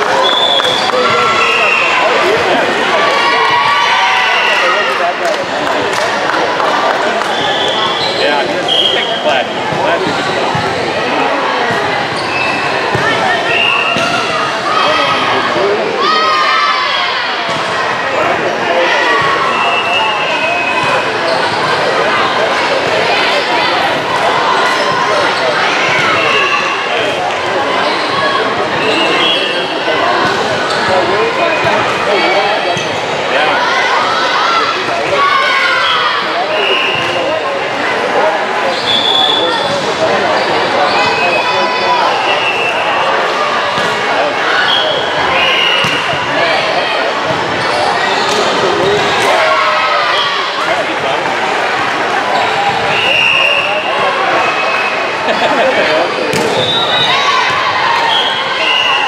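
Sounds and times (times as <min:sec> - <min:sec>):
voices chattering and calling out: 0:00.0 - 0:59.0
volleyballs bouncing and hit: 0:12.8 - 0:14.3, 0:45.8 - 0:46.3, 0:56.3 - 0:56.7.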